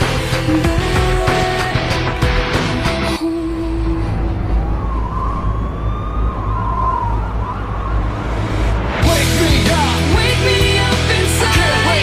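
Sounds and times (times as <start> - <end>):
steady deep bass: 0.0 - 3.2, 3.8 - 12.0
wavering siren-like tone: 3.4 - 9.0.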